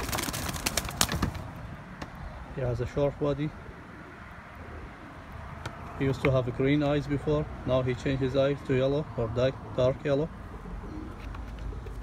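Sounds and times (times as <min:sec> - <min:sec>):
pigeons rustling in a cage: 0:00.0 - 0:01.6.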